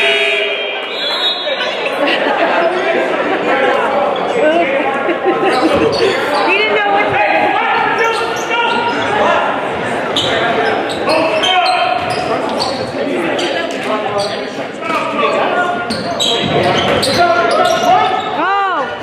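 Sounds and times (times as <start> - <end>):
chatter of many voices: 0.0 - 19.0.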